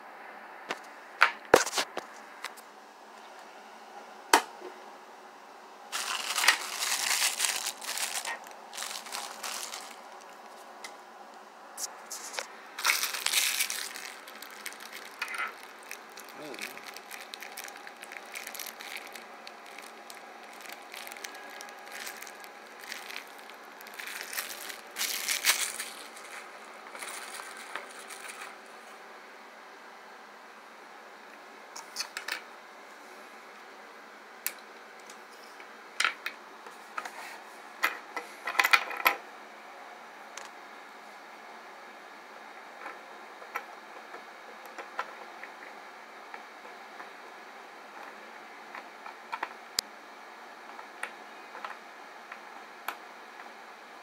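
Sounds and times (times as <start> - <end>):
plastic packaging crinkling: 5.9 - 10.7, 11.8 - 28.7.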